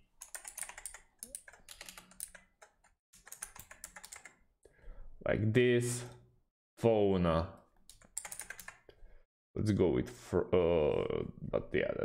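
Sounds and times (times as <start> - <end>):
rapid typing on keyboard: 0.2 - 4.4, 7.9 - 8.9.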